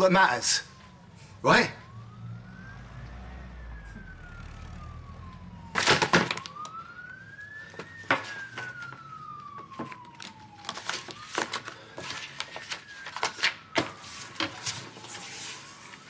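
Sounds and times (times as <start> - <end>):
siren wailing: 0.0 - 16.0.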